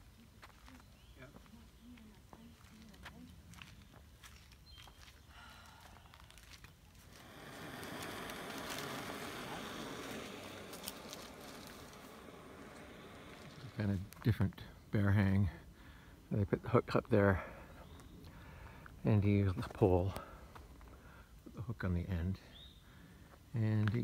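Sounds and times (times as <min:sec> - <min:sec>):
loud rustling: 0:07.1 - 0:14.2.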